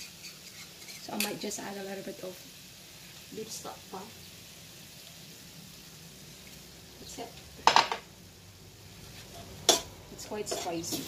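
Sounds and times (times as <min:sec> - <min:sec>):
meat sizzling in a frying pan: 0:00.0 - 0:11.0
metal spoon clanking on pan: 0:07.6 - 0:08.0, 0:09.4 - 0:11.0.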